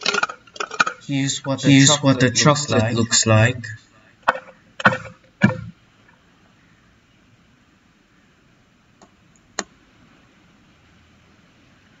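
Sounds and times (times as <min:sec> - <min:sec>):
sharp knocks: 0:04.3 - 0:05.8.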